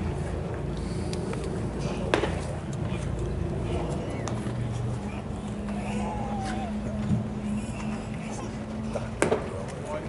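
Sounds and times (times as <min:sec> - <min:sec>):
ballpark background noise: 0:00.0 - 0:10.0.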